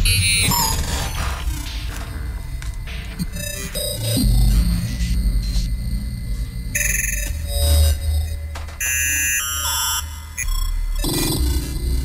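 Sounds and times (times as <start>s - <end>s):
low bass drone: 0.5s - 8.7s.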